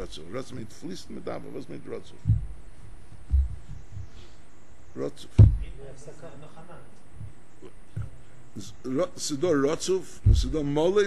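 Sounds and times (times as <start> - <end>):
dull low thumps: 2.0 - 4.4, 5.3 - 5.8, 7.2 - 8.3, 10.1 - 11.0.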